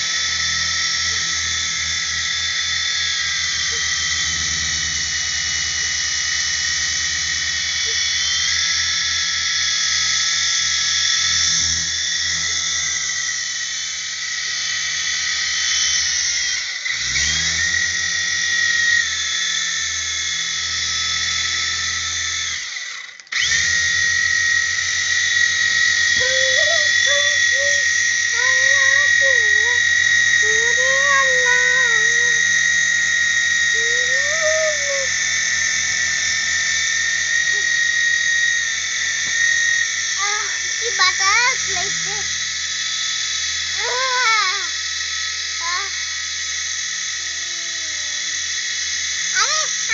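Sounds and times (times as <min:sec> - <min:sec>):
toy helicopter motor whining: 0:00.0 - 0:49.9.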